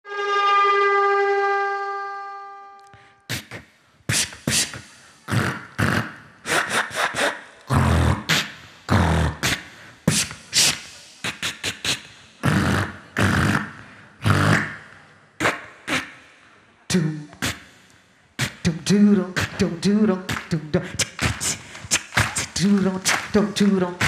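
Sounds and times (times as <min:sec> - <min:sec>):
beatboxing echoing in hall: 0:02.9 - 0:24.0.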